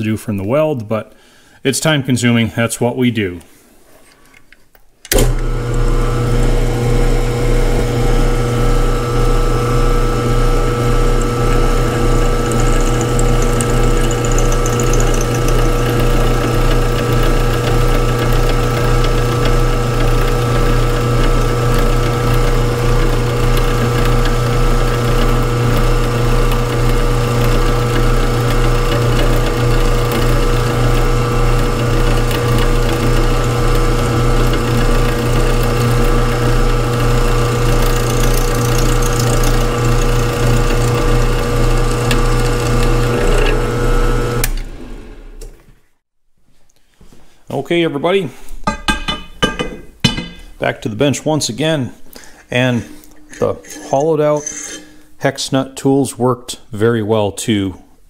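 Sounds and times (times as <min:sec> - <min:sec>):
milling machine cutting steel: 0:05.1 - 0:45.4.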